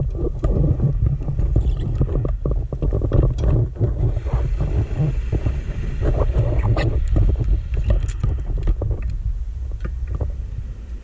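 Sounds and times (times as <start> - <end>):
bubbling crackle: 0.0 - 11.0
low underwater rumble: 0.0 - 11.0.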